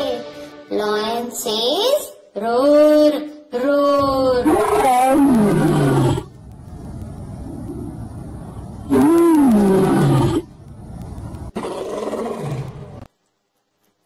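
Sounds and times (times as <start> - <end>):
lion roaring: 4.2 - 6.3, 7.4 - 10.5, 11.2 - 13.1.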